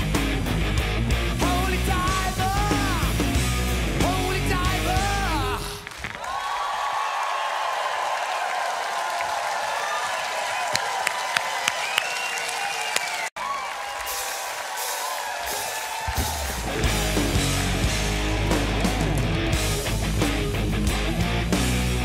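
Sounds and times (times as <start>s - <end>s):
rock band playing: 0.0s - 5.8s, 14.0s - 22.0s
audience clapping and cheering: 5.2s - 19.6s.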